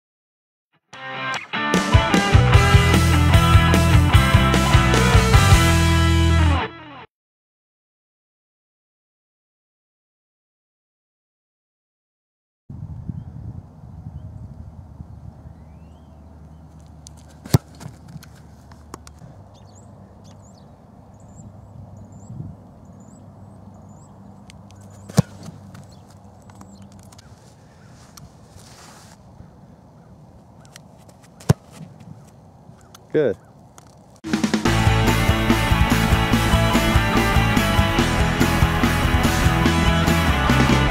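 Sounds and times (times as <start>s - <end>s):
wind noise: 12.7s - 15.9s, 21.2s - 23.4s
faint bird chirps: 15.1s - 16.7s, 19.2s - 28.0s
football kick thumps: 17.2s - 18.3s, 24.9s - 26.0s, 31.0s - 32.1s.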